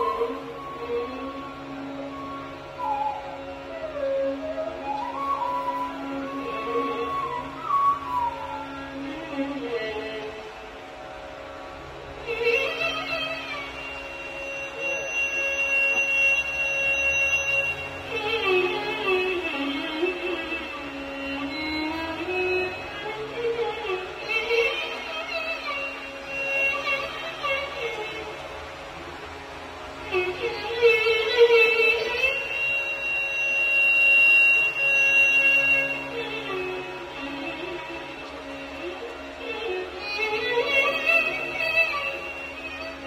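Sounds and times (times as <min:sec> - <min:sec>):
bamboo flute long note: 0:00.0 - 0:10.4, 0:12.4 - 0:28.4, 0:30.1 - 0:43.0
constant drone: 0:00.0 - 0:43.0
bamboo flute high note: 0:02.1 - 0:08.9, 0:13.8 - 0:18.6, 0:32.0 - 0:36.6.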